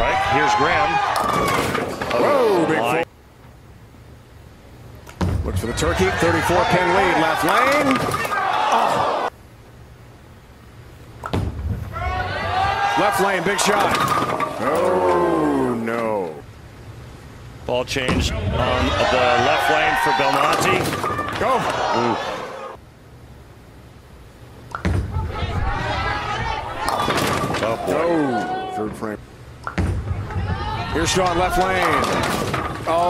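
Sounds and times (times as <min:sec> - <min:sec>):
bowling pins crashing: 0:01.1 - 0:02.3, 0:11.3 - 0:15.2, 0:18.1 - 0:22.0, 0:24.8 - 0:28.2, 0:29.7 - 0:33.0
bowling ball rolling: 0:13.1 - 0:15.4, 0:29.6 - 0:33.0
crowd voices: 0:18.3 - 0:22.8, 0:25.1 - 0:29.0.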